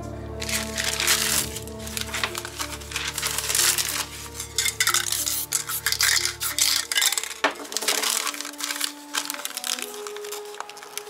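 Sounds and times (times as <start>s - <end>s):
background music: 0.0s - 11.0s
hands rustling and scraping poster: 0.4s - 11.0s.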